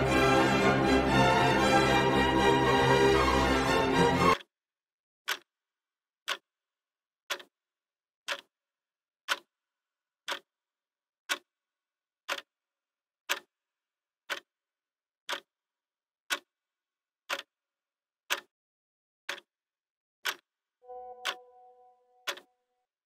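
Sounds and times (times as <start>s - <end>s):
clock ticking: 0.0s - 4.4s, 5.3s - 5.5s, 7.3s - 7.5s, 8.3s - 8.5s, 9.3s - 9.5s, 10.3s - 10.5s, 11.3s - 11.5s, 12.3s - 12.5s, 13.3s - 13.5s, 14.3s - 14.5s, 15.3s - 15.5s, 16.3s - 16.5s, 17.3s - 17.5s, 18.3s - 18.5s, 19.3s - 19.5s, 20.2s - 21.5s, 22.2s - 22.5s.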